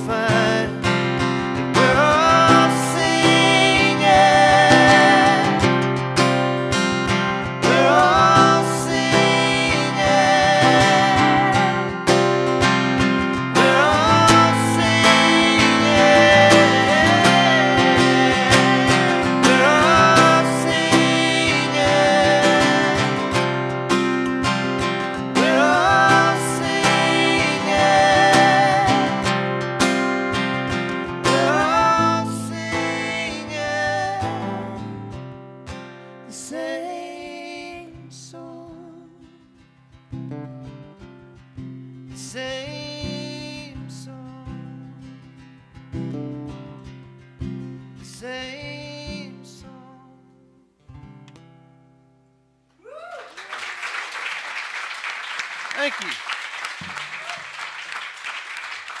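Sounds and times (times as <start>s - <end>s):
acoustic guitar strumming: 0.0s - 36.5s, 39.2s - 52.5s
voices singing held notes: 1.6s - 6.0s, 7.4s - 12.3s, 13.4s - 24.1s, 24.8s - 29.6s, 31.1s - 34.9s.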